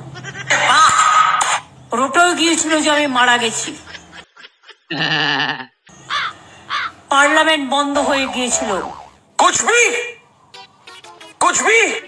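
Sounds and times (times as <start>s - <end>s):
bleat: 0.2s - 0.6s.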